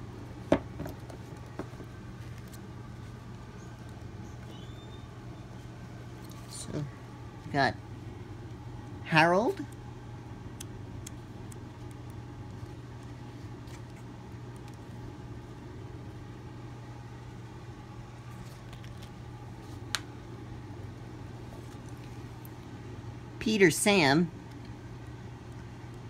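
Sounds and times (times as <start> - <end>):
low background hum: 0.0 - 26.0.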